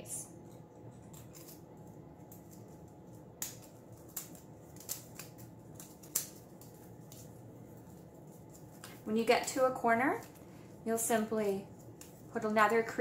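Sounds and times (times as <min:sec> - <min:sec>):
paper strips rustling and crackling: 0:00.5 - 0:13.0.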